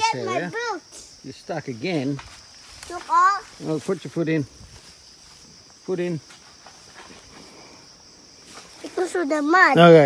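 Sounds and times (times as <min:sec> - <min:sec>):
high-pitched insect drone: 0:00.0 - 0:10.0.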